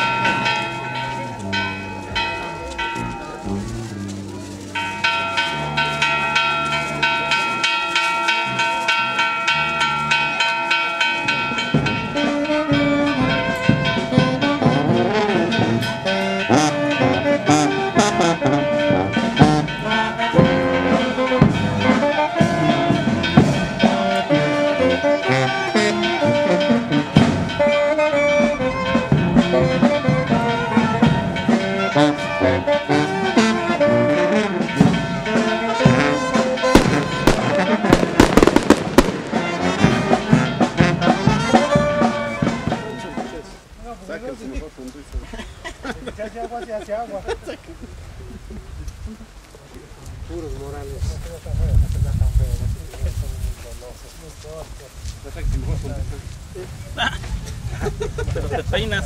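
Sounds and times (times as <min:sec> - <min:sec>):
brass band music: 0:00.0 - 0:44.4.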